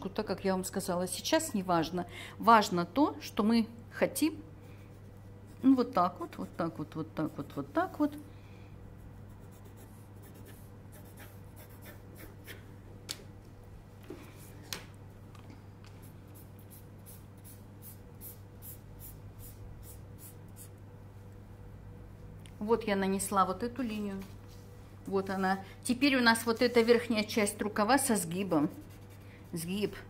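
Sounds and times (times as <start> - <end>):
pencil scratching on paper: 9.0 - 12.6, 28.4 - 29.7.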